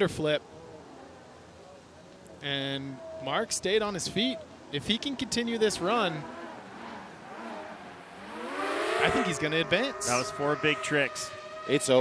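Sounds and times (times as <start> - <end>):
motor whine rising in pitch: 5.9 - 12.0.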